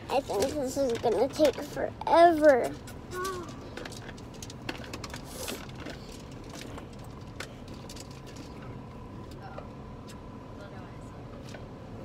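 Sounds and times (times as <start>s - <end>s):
car engine low rumble inside cabin: 0.0s - 12.0s.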